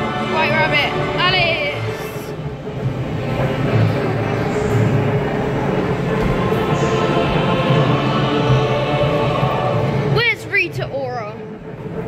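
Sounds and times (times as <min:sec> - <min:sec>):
ride soundtrack music: 0:00.0 - 0:12.0.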